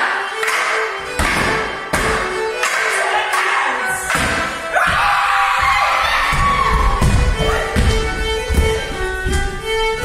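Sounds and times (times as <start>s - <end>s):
live folk dance tune: 0.0s - 10.0s
wooden sticks clashing: 0.4s - 4.9s.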